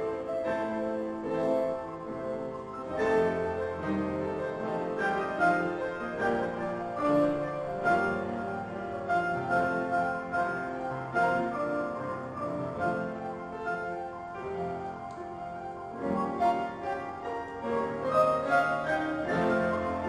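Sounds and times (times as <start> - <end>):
pianos playing together: 0.0 - 20.0.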